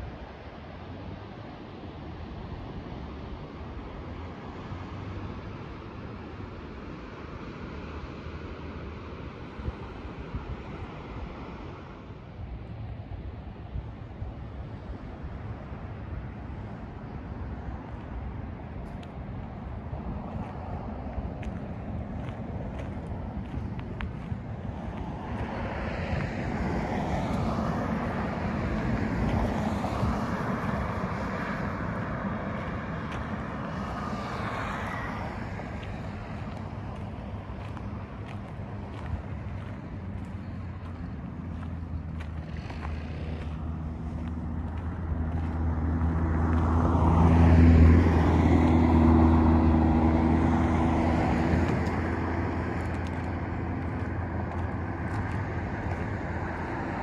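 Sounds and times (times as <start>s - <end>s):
outdoor noise: 0.0s - 57.0s
motor vehicle passing: 20.1s - 57.0s.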